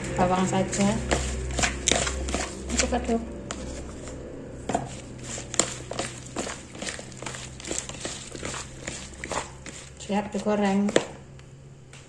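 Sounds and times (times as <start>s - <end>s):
wet mushrooms squishing in bowl: 0.2s - 4.2s, 4.8s - 11.2s.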